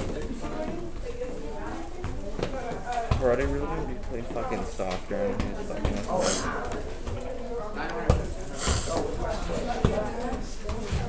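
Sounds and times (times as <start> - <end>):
short hiss: 8.6 - 8.9.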